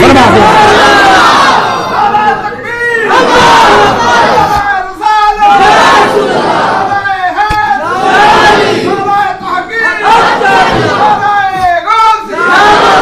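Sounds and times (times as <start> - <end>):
voices chanting over loudspeakers: 3.0 - 4.6, 5.2 - 7.0, 7.8 - 11.3, 12.2 - 13.0.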